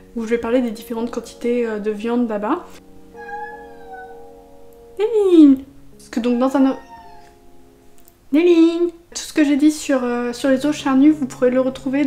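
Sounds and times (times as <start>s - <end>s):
cat meowing: 3.1s - 4.4s, 6.2s - 7.4s.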